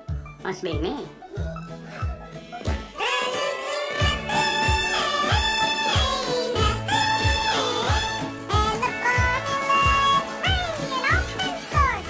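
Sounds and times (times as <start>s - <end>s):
sped-up chipmunk voice singing: 3.0s - 12.0s
steady beat: 3.9s - 10.8s.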